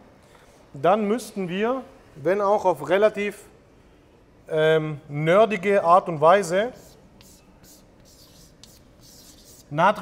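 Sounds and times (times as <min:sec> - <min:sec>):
chalk scratching on blackboard: 0:06.5 - 0:10.0.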